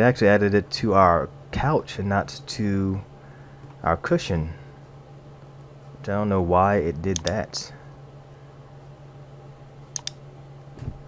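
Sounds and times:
steady low hum: 0.0 - 11.0
computer mouse click: 7.2 - 7.4, 10.0 - 10.2.

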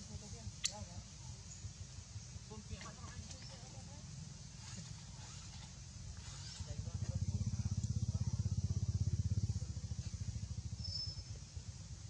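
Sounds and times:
engine running: 4.7 - 12.0.

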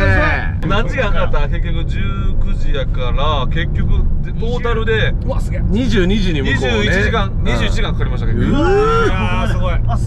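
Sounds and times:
men chatting and exclaiming: 0.0 - 10.0
road and engine noise in van: 0.0 - 10.0.

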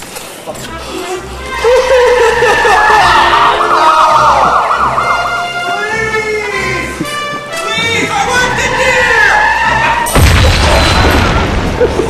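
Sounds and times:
emergency vehicle siren: 1.5 - 6.8.

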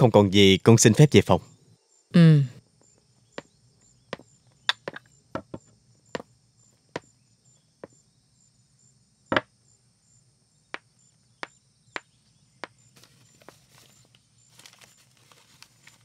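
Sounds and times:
high insect chirring: 0.7 - 16.0.

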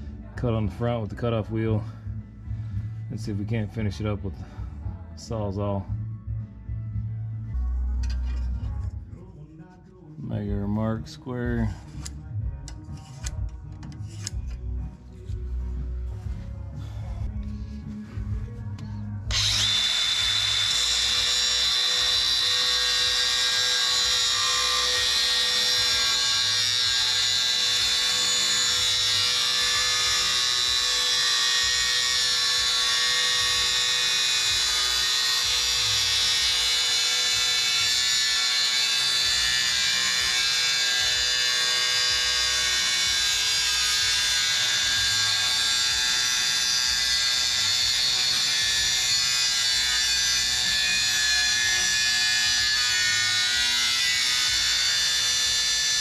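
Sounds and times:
angle grinder cutting metal: 19.2 - 56.0.

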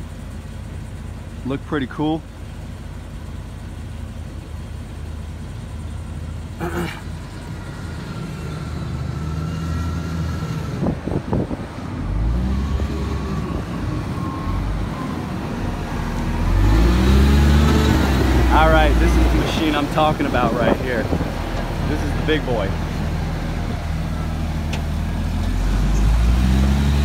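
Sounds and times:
wheel loader diesel engine revving: 7.0 - 27.0.

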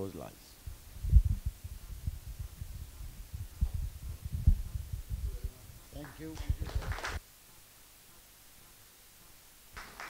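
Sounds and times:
microphone handling thumps: 0.6 - 7.0.

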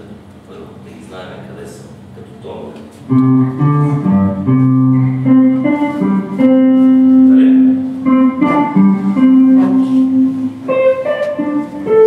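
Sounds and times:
electric guitar melody: 3.1 - 12.0.

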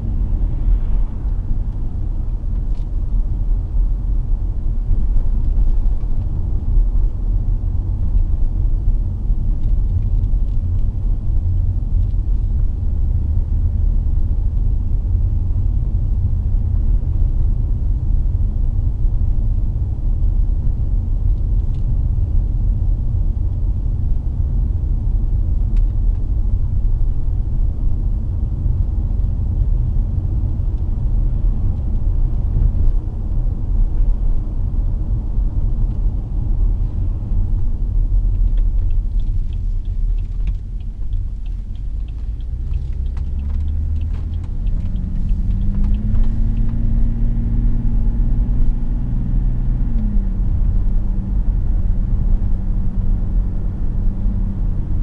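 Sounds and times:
car engine inside cabin: 0.0 - 55.0
light ticks: 38.1 - 46.8.

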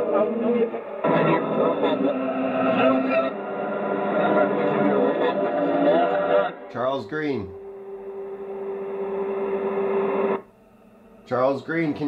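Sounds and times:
radio static with steady hum: 0.0 - 12.0.

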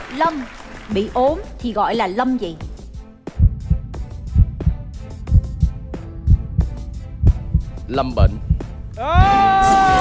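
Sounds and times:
low heartbeat-like double thump: 3.3 - 9.4.

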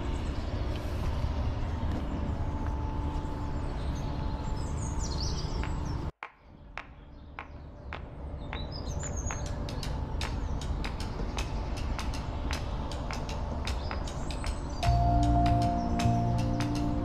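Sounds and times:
small birds chirping: 0.0 - 17.0
low steady rumble: 11.2 - 17.0.

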